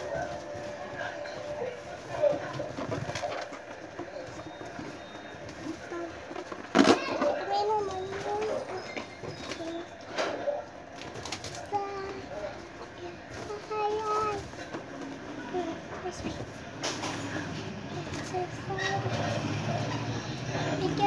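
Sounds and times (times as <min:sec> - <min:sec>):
faint voices: 0:00.0 - 0:21.0.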